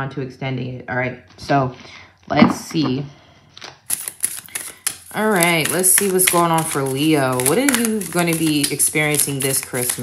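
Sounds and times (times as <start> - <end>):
cards being shuffled: 3.6 - 10.0.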